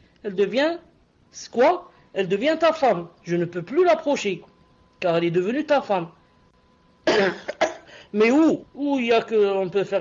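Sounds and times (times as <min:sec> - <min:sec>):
man coughing: 0:07.1 - 0:08.0.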